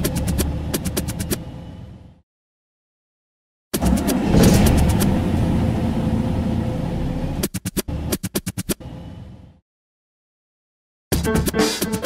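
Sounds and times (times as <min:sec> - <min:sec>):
electronic music with engine sample: 0:11.1 - 0:12.0.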